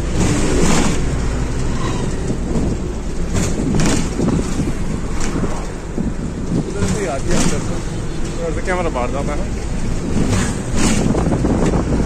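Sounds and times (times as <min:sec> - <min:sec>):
bus engine rumbling: 0:00.0 - 0:12.0
short knocks and rattles: 0:00.1 - 0:05.4, 0:09.9 - 0:11.9.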